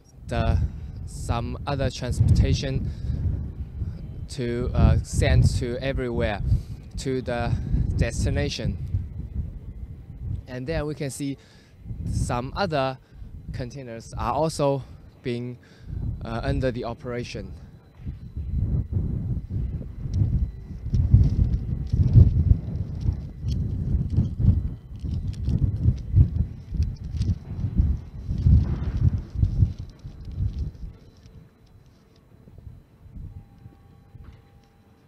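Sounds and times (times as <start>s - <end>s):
wind buffeting microphone: 0.0s - 34.8s
faint steady hum: 0.0s - 35.0s.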